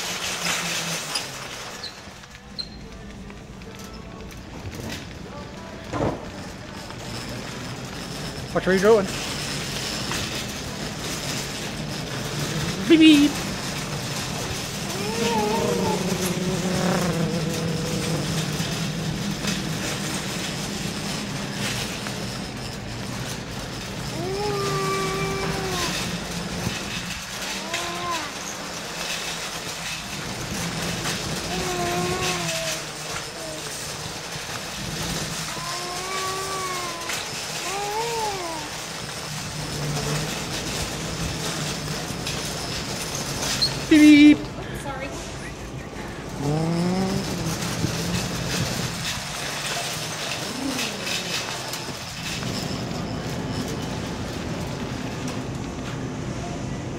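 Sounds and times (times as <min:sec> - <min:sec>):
shopping cart rolling and rattling: 0:00.0 - 0:56.9
person making drawn-out vocal sounds: 0:14.9 - 0:18.6, 0:46.3 - 0:48.2, 0:50.4 - 0:51.6.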